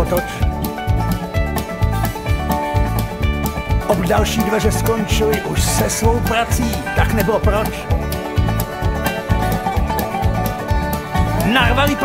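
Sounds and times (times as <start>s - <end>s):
country band music: 0.0s - 12.0s.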